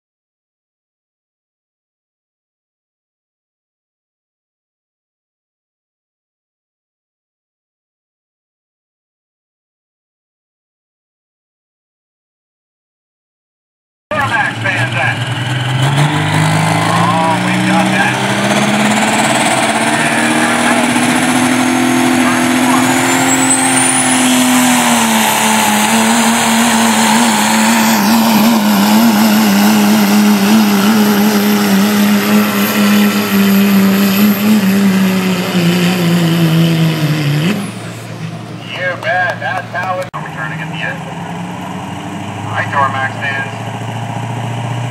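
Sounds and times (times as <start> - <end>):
diesel truck engine revving: 14.1 - 44.9
turbocharger whistle: 14.2 - 38.1.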